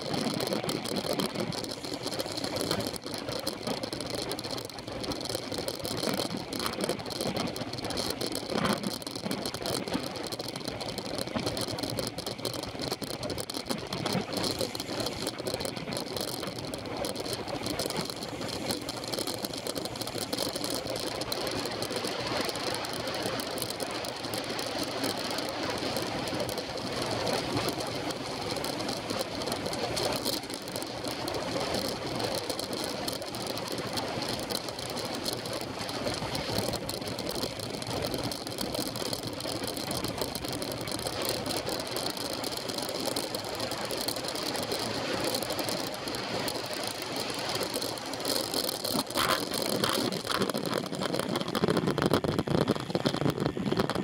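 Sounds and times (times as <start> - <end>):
bike tyres on tarmac: 0.0 - 54.0
rattling buzz of vibration: 0.0 - 54.0.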